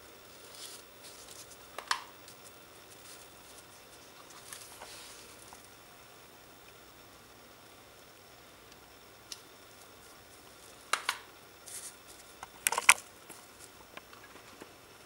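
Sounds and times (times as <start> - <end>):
paper rustling: 0.3 - 5.7, 11.6 - 13.8.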